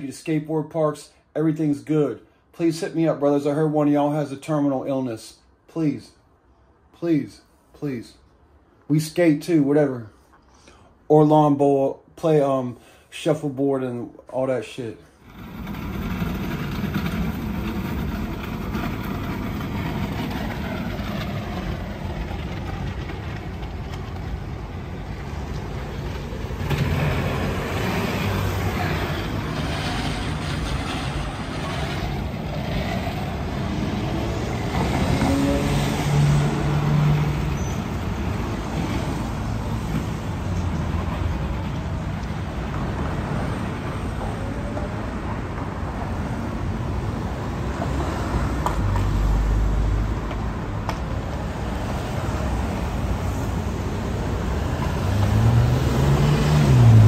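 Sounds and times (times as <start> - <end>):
road traffic passing: 0.9 - 57.0
low engine hum: 15.3 - 43.0.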